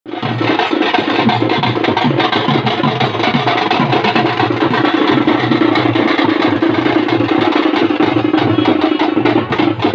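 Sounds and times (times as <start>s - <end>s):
barrel drums beaten with sticks: 0.1s - 9.9s.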